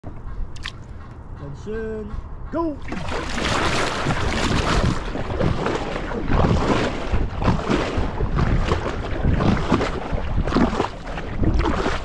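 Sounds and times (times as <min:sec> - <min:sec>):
paddle strokes: 0:02.1 - 0:12.0
water splashing along hull: 0:02.1 - 0:12.0
wind noise on microphone: 0:02.8 - 0:12.0.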